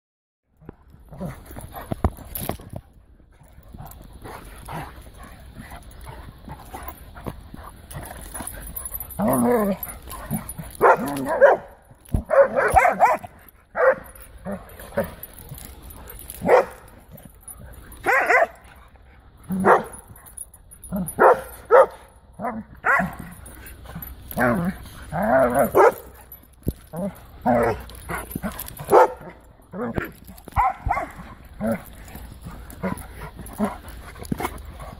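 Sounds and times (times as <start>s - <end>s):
dogs play-fighting: 0.6s - 34.9s
dog barks: 9.3s - 15.2s, 16.4s - 16.9s, 18.0s - 18.6s, 19.5s - 20.0s, 21.0s - 23.3s, 25.3s - 26.2s, 28.8s - 31.8s.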